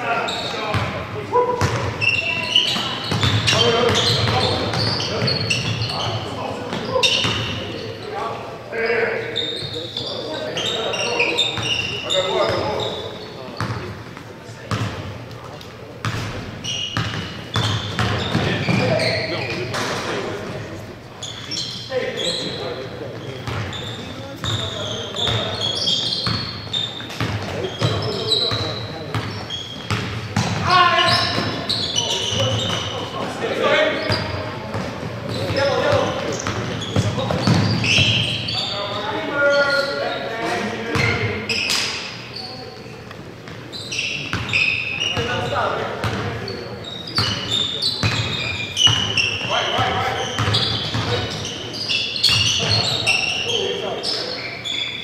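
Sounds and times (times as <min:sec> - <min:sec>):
sneakers squeaking: 0:00.0 - 0:55.0
players calling indistinctly: 0:16.6 - 0:42.8
basketball bouncing on wooden floor: 0:29.9 - 0:30.6.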